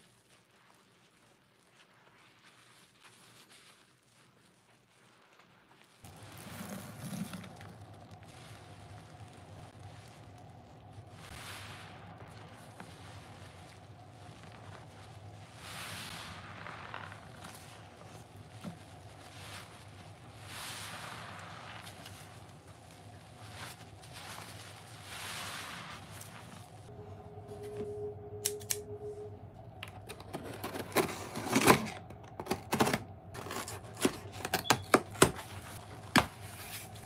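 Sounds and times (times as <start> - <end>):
soapy sponge squelching: 0.0 - 26.9.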